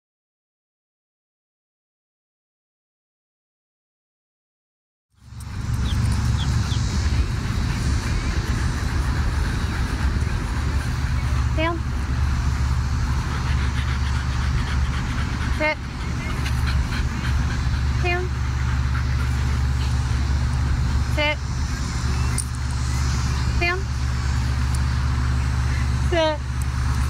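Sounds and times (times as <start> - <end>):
low rumble: 5.2 - 27.0
woman giving commands to dog: 18.0 - 18.4, 21.2 - 21.4.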